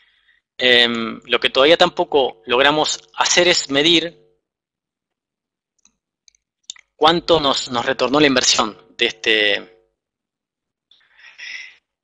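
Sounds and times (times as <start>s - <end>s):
man speaking: 0.6s - 4.1s, 6.7s - 9.7s, 11.3s - 11.7s.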